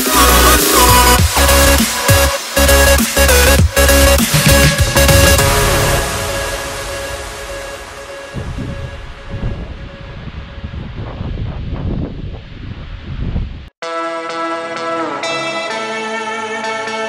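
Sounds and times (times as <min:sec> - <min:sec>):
electronic dance music: 0:00.0 - 0:09.3, 0:13.8 - 0:17.0
wind buffeting the microphone: 0:08.3 - 0:13.7
plucked guitar music: 0:13.8 - 0:17.0.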